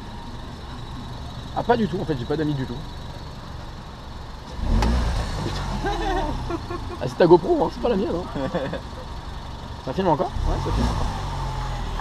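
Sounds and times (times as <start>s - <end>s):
car moving off rumble: 0.0s - 12.0s.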